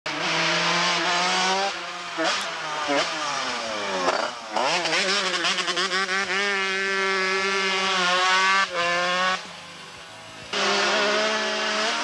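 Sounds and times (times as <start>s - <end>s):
racing motorcycle engine high revs: 0.1s - 12.0s.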